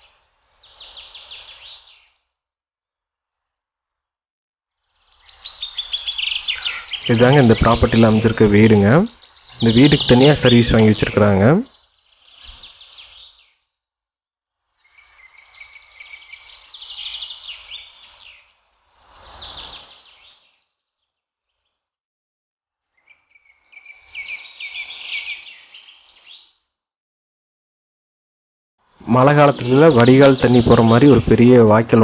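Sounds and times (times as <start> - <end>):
small birds chirping: 0.0 - 2.4, 4.8 - 13.8, 14.5 - 22.0, 22.8 - 26.7, 28.9 - 32.0.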